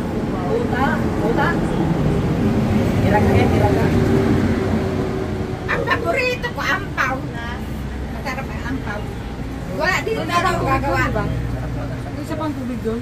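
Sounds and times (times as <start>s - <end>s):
people talking: 0.3s - 4.4s, 5.7s - 13.0s.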